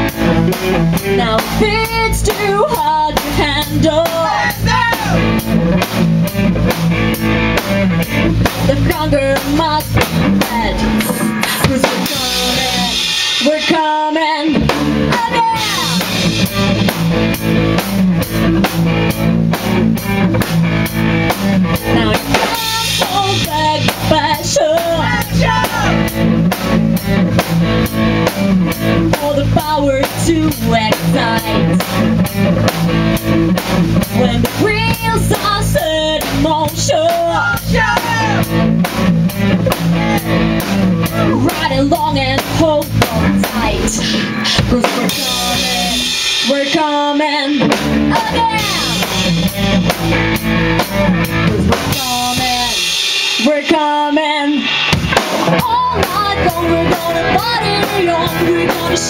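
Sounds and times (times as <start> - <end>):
rock band playing: 0.0 - 59.0.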